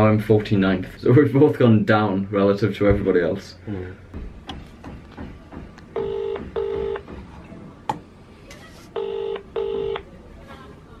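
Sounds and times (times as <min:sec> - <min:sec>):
phone ringback tone: 0:06.0 - 0:07.0, 0:09.0 - 0:10.0.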